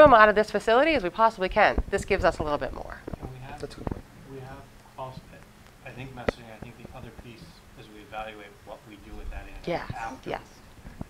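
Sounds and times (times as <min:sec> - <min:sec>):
faint indistinct voices: 0:03.2 - 0:10.4.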